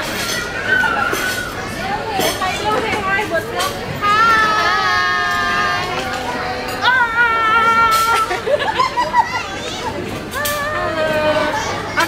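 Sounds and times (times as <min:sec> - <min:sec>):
group calling out excitedly: 0:04.0 - 0:08.5.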